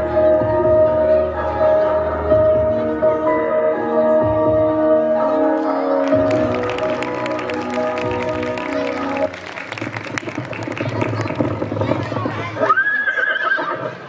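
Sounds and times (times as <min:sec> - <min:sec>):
music: 0:00.0 - 0:12.8
horse whinny: 0:12.6 - 0:14.0.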